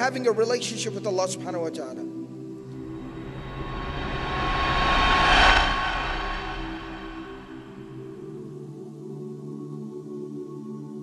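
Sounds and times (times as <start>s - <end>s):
soft background music: 0.0s - 3.6s
rushing whoosh: 2.7s - 8.3s.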